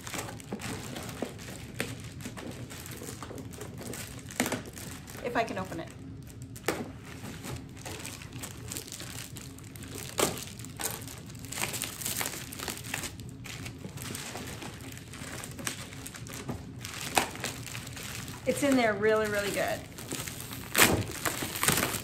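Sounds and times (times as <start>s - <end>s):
packaging crinkling and rustling: 0.0s - 22.0s.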